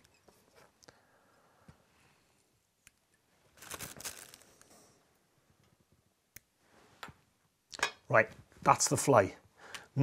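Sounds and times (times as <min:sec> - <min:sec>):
rustling handling noise: 0:03.3 - 0:05.0.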